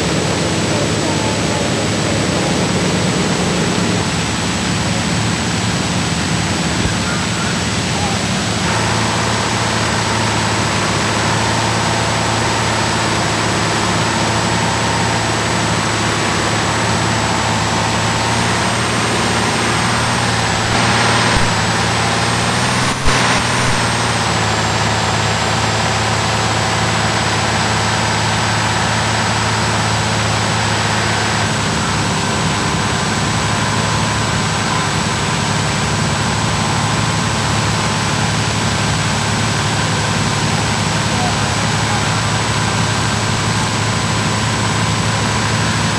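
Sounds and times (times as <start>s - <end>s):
fire engine engine drone: 0.0s - 45.9s
tape hiss: 0.0s - 45.9s.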